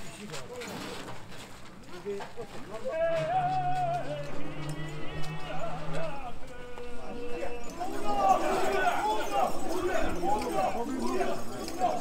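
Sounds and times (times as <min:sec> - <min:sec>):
crowd shouting drawn-out calls: 0:02.8 - 0:12.0.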